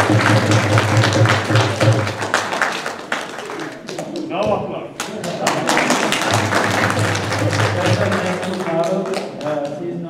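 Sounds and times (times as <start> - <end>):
audience applauding: 0.0 - 4.4, 5.0 - 9.8.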